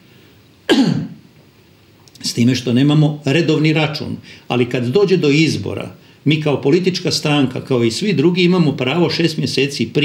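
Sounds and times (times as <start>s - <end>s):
man coughing: 0.7s - 1.2s.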